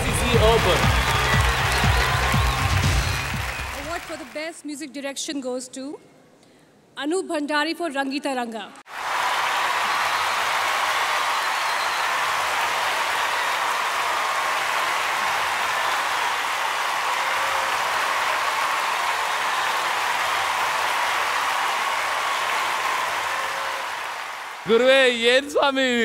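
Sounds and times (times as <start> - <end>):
audience applauding: 0.0 - 4.6, 8.9 - 25.5.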